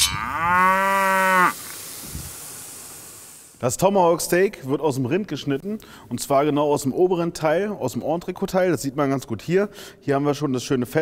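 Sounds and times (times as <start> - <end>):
cow mooing: 0.0 - 1.6.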